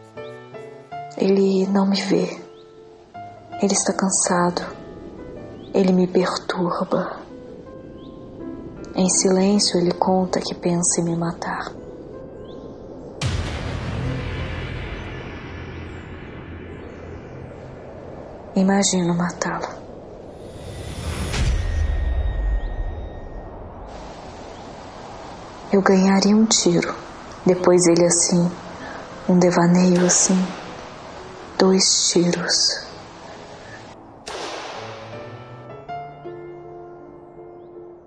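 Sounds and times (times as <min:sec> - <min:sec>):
low steady drone: 0:08.7 - 0:35.2
hiss of cinematic hit: 0:13.2 - 0:18.0, 0:20.3 - 0:23.0, 0:34.3 - 0:35.4
gunshot crack with hissing tail: 0:34.2 - 0:35.5.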